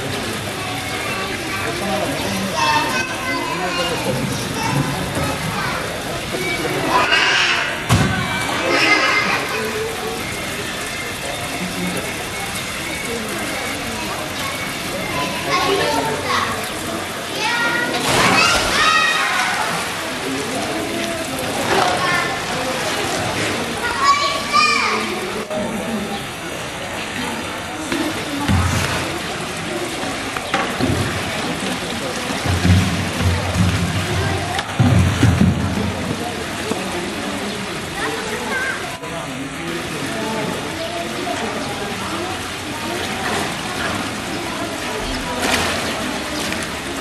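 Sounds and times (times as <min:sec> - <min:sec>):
children chattering and calling out: 0:00.0 - 0:47.0
crowd talk: 0:00.0 - 0:47.0.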